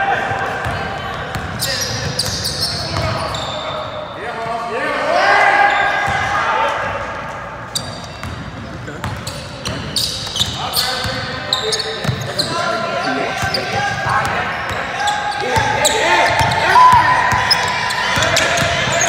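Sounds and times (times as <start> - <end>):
sneakers squeaking: 0.6 - 4.2, 7.6 - 19.0
people shouting: 16.5 - 17.6.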